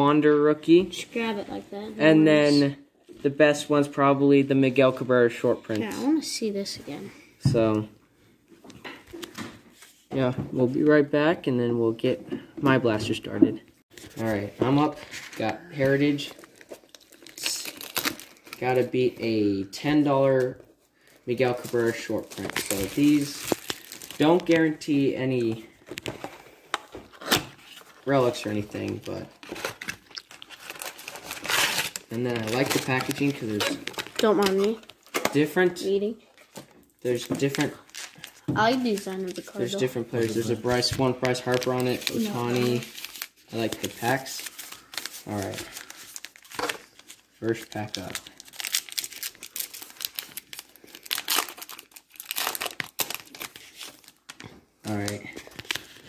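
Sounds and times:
wrapper tearing and crinkling: 0:16.3 - 0:18.8, 0:21.6 - 0:24.7, 0:29.4 - 0:35.3, 0:37.1 - 0:39.6, 0:41.3 - 0:56.0.

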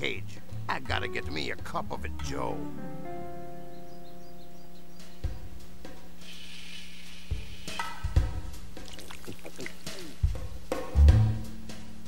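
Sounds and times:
background music with drums: 0:00.0 - 0:12.0.

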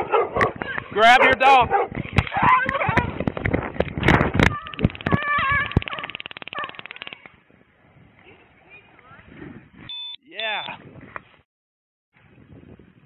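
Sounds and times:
taser clicking: 0:04.6 - 0:07.3.

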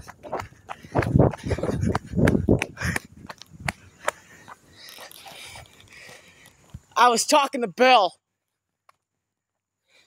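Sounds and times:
footsteps on asphalt: 0:00.0 - 0:07.0.

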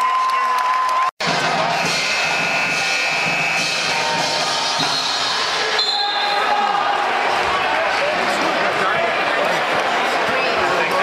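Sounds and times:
crowd noise in gymnasium: 0:00.0 - 0:11.0.

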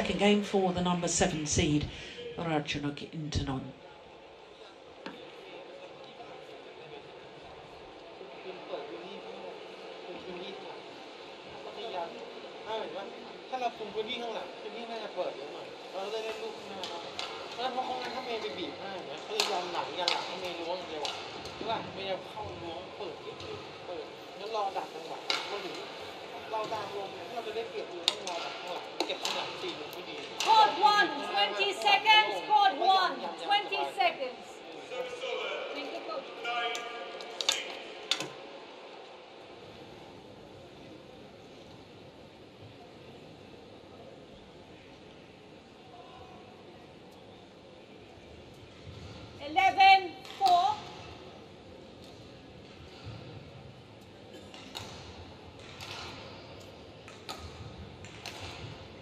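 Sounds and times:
low steady background noise: 0:00.0 - 0:59.0.

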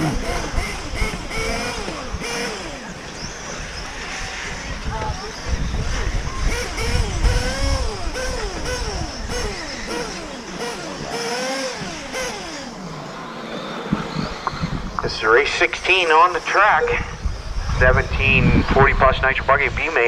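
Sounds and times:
wind rumble on microphone: 0:00.0 - 0:10.2, 0:13.9 - 0:15.4, 0:16.8 - 0:20.0
electric motors whining: 0:00.0 - 0:20.0.

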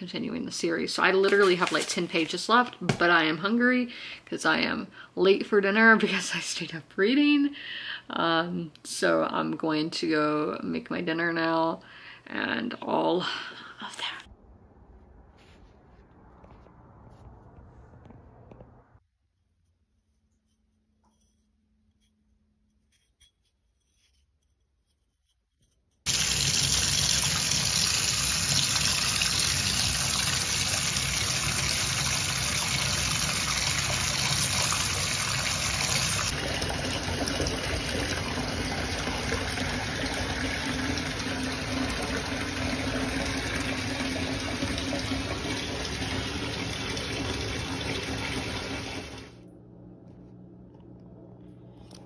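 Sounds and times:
tap running into bathtub: 0:26.1 - 0:49.3.

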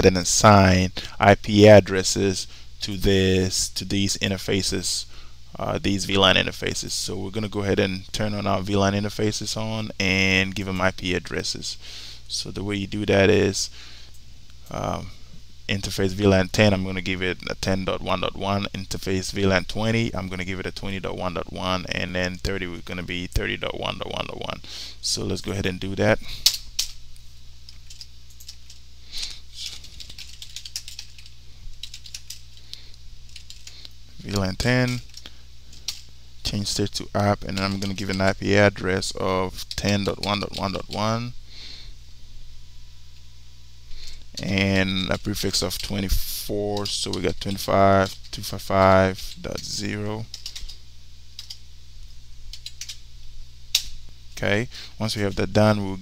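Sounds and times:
low electrical hum: 0:00.0 - 0:56.0.

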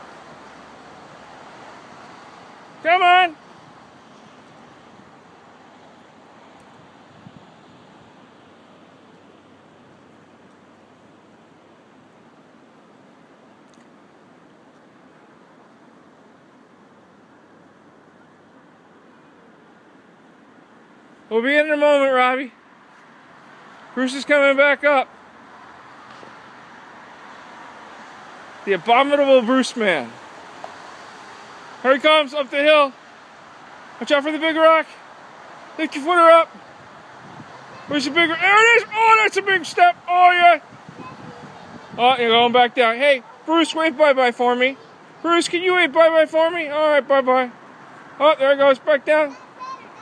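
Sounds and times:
even hiss: 0:19.8 - 0:50.0.

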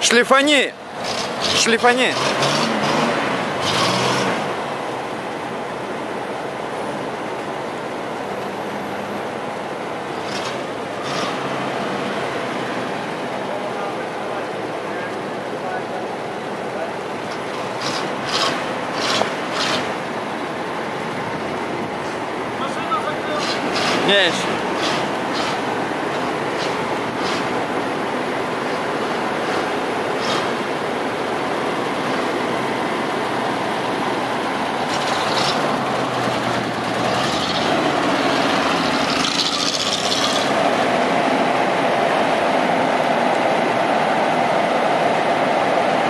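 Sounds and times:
pickup truck engine running: 0:00.8 - 0:46.0.

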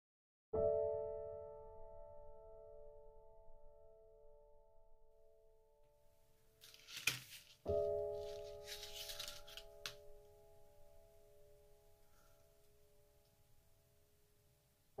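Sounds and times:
soft piano chord: 0:00.6 - 0:06.0, 0:07.7 - 0:13.3
plastic filament rustling and clicking: 0:06.6 - 0:07.6.

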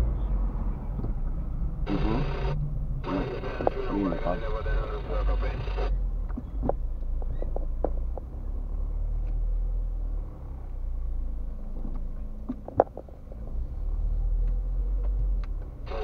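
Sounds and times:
car idling rumble: 0:00.0 - 0:16.0.

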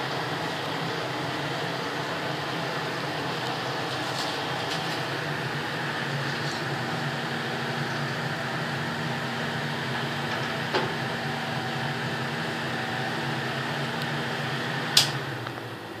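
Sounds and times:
fan humming: 0:00.0 - 0:16.0.

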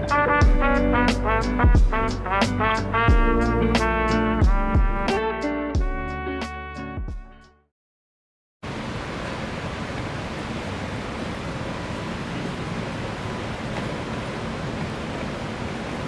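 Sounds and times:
steady outdoor rushing noise: 0:08.6 - 0:16.0.

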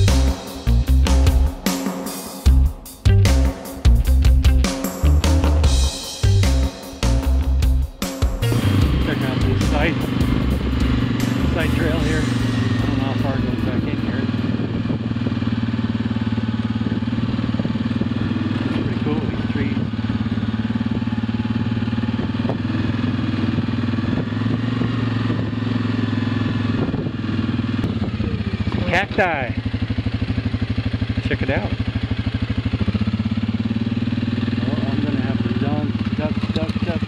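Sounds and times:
atv engine running: 0:00.0 - 0:01.7, 0:02.5 - 0:37.0.

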